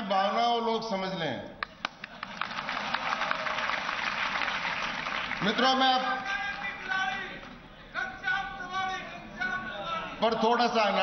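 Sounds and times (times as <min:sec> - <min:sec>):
audience applauding: 0:01.6 - 0:07.2.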